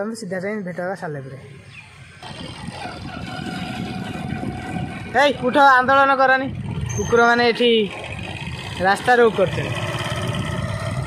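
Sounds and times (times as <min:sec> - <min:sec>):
road noise: 0:00.0 - 0:11.0
vehicle engine running: 0:02.2 - 0:11.0.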